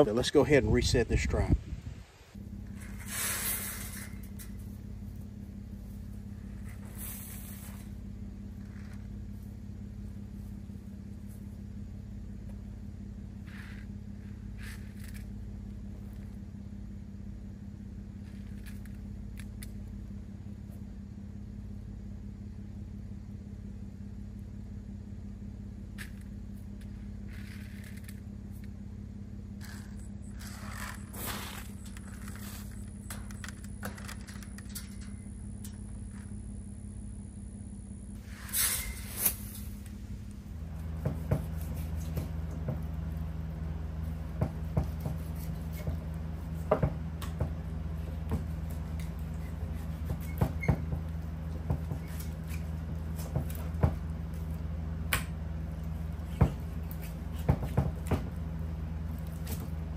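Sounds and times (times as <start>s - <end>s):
low motor hum: 0.0s - 59.9s
short scrapes and clicks: 29.6s - 35.1s.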